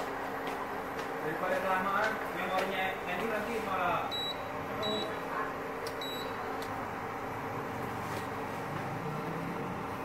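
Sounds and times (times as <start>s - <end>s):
steady background noise: 0.0s - 10.0s
short high beeps: 4.1s - 5.1s, 6.0s - 6.4s.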